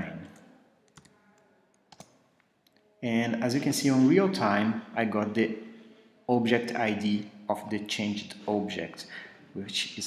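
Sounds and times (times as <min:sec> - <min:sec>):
keyboard clicks: 0:00.3 - 0:02.2.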